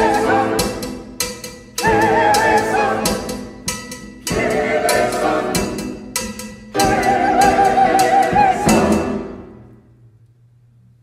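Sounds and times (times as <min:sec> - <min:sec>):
church choir singing: 0:00.0 - 0:01.0, 0:01.8 - 0:03.4, 0:04.3 - 0:06.0, 0:06.7 - 0:09.6
accompaniment with accented strokes: 0:00.0 - 0:09.9.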